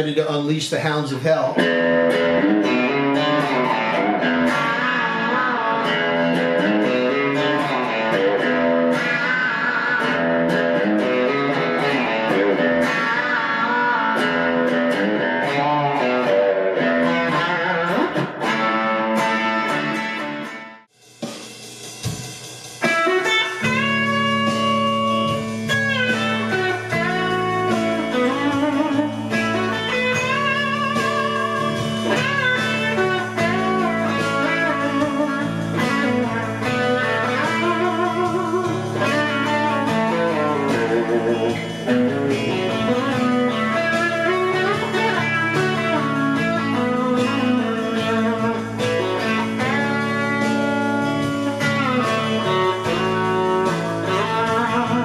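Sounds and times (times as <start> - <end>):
overdriven electric guitar: 0.0 - 20.9, 22.0 - 55.0.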